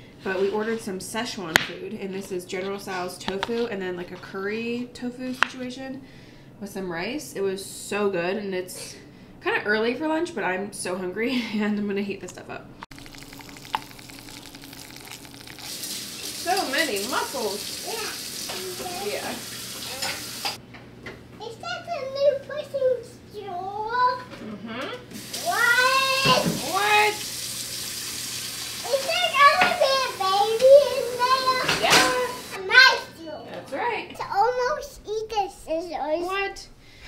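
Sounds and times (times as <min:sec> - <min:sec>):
food sizzling in a pan: 0:12.9 - 0:20.6, 0:25.2 - 0:32.6
tap running into sink: 0:18.4 - 0:20.6, 0:25.2 - 0:27.0, 0:27.7 - 0:30.0, 0:31.5 - 0:32.4.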